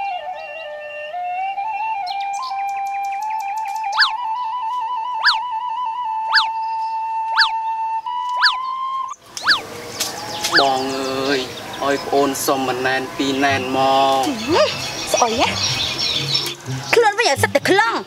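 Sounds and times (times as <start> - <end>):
bamboo flute melody: 0.0 - 17.0
birds chirping: 0.0 - 18.0
outdoor ambience: 0.0 - 18.0
sharp chirp: 2.4 - 4.2, 5.2 - 5.5, 6.3 - 7.6, 8.2 - 9.6.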